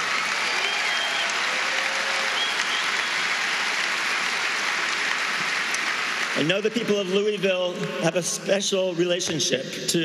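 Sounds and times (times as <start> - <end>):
large audience applauding: 0.0 - 7.7.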